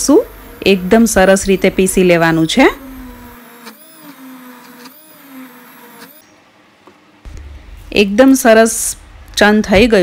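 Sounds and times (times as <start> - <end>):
immersion blender motor: 0.0 - 6.2.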